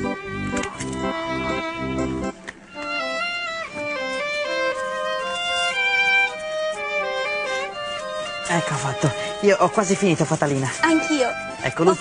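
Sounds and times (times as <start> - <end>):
violin melody: 0.0 - 12.0.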